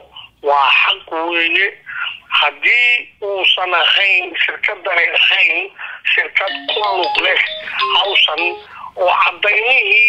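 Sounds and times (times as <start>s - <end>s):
telephone-like speech: 6.4s - 8.8s.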